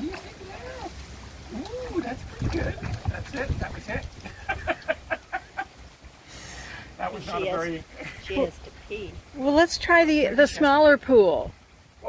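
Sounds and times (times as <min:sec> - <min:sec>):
water sloshing: 0:00.0 - 0:11.4.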